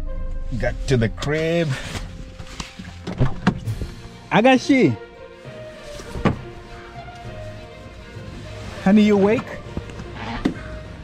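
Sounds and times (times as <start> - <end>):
car door opening: 6.0 - 6.7.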